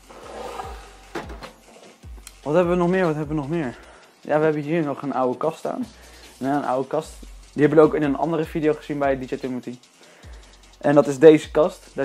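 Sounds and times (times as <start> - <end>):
amplifier knocking on wooden cabinet: 1.1 - 1.5.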